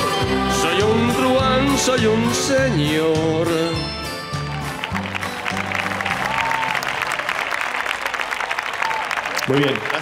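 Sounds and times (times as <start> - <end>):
audience applauding: 4.3 - 10.0.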